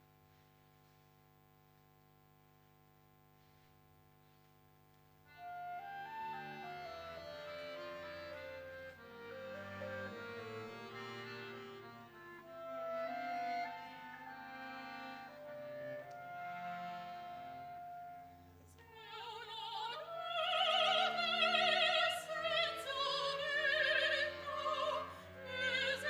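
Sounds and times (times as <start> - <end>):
small instrumental ensemble: 5.3 - 18.5.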